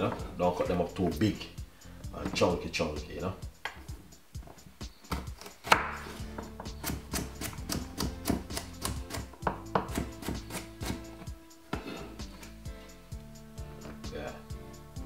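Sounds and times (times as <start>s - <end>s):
background music: 0.0s - 15.0s
knife chopping on wooden board: 5.0s - 11.0s.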